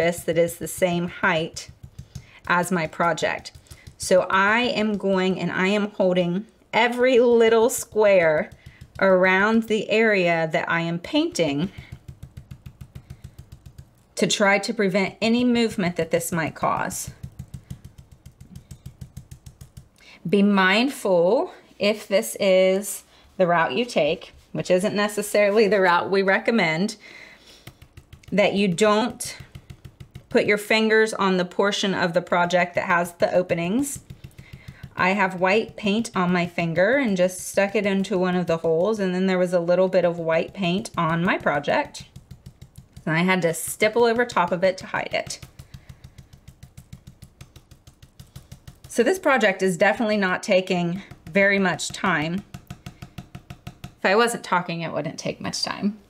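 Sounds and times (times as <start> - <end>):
brush dabbing taps: 0.0 - 6.2, 6.8 - 20.4, 27.5 - 54.5.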